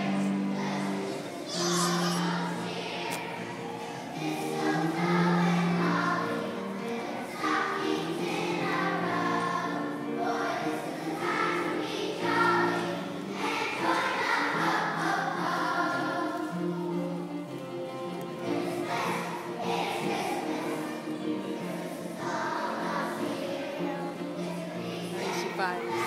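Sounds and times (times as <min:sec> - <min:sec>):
children's choir singing: 0:00.0 - 0:26.0.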